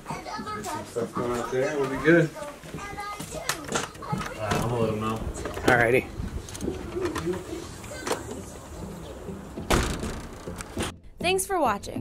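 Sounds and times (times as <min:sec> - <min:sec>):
loud thump: 0:09.6 - 0:10.9.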